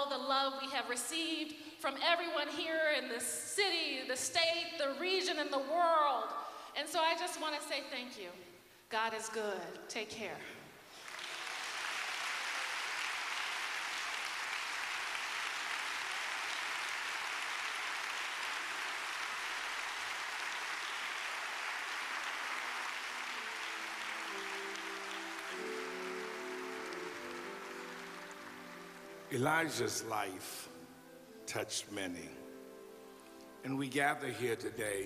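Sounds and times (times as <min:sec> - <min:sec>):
congregation applauding: 0:10.9 - 0:30.9.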